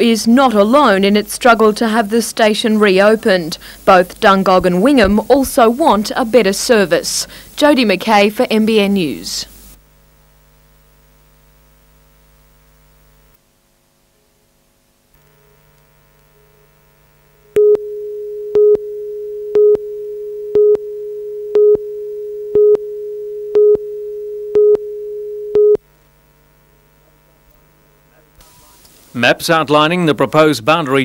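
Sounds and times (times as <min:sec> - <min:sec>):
faint hum: 0:00.0 - 0:30.3
steady line-up tone: 0:15.2 - 0:29.6
short beeps: 0:17.6 - 0:25.8.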